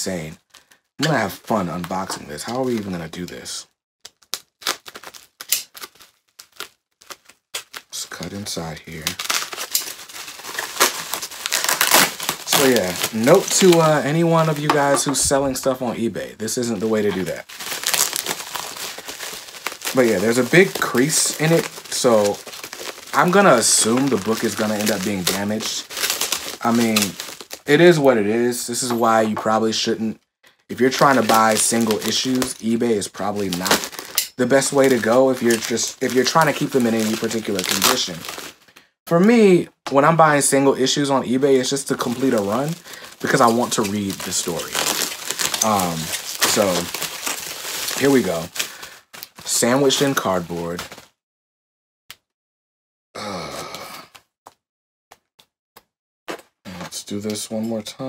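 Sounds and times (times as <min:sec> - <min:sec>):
bubble wrap crinkling: 0:00.4 - 0:03.4, 0:04.0 - 0:30.0, 0:30.7 - 0:39.4, 0:40.3 - 0:51.2.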